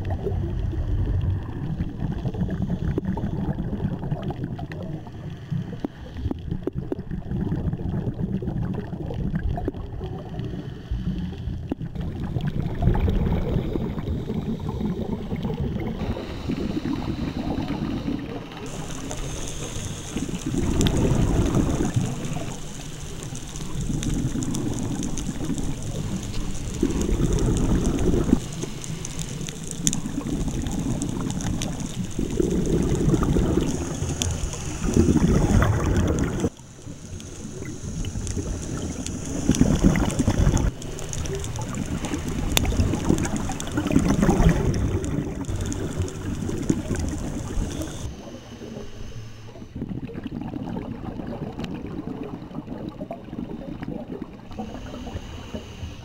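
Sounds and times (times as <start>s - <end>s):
exhaust bubbles gurgling: 0.0s - 56.0s
diver breathing through regulator: 10.3s - 11.8s, 13.3s - 41.1s.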